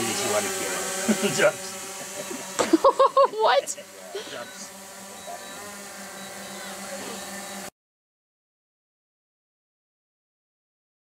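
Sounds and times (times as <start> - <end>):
drone propellers buzzing: 0.0 - 7.7
faint voices: 3.4 - 5.8, 6.5 - 7.5.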